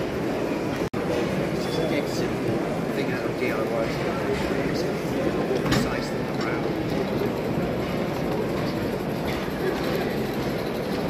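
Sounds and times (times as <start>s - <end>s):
crowd chatter: 0.0s - 11.0s
model steam locomotive running: 4.9s - 11.0s.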